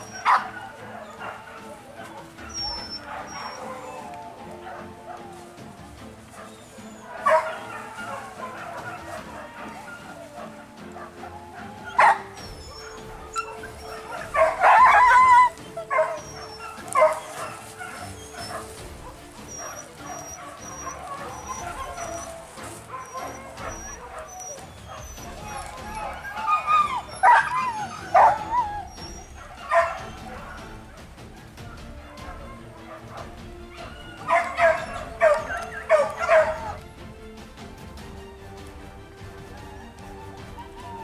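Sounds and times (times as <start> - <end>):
dogs barking and yelping: 0.0 - 41.0.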